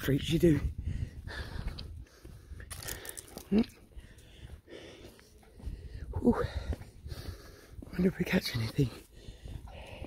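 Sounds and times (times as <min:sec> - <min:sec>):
woman breathing hard: 0:00.8 - 0:07.9, 0:09.1 - 0:10.0.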